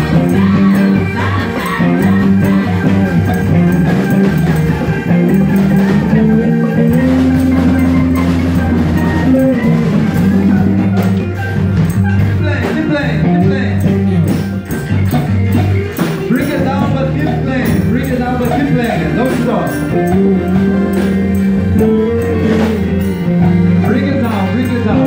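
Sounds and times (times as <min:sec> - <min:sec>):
bass line: 0:00.0 - 0:25.0
drums: 0:00.0 - 0:25.0
electric guitar: 0:00.0 - 0:25.0
keyboard: 0:00.0 - 0:25.0
live band jamming: 0:00.0 - 0:25.0.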